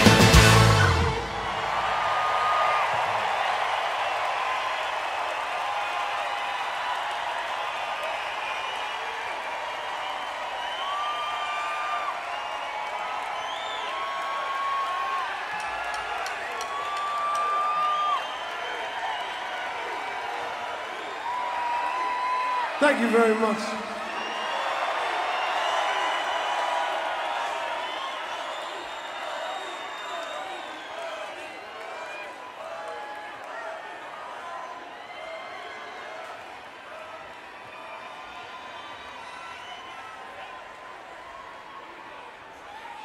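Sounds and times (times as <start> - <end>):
band playing: 0.0 - 1.9
audience applauding: 0.0 - 43.0
audience cheering: 0.0 - 43.0.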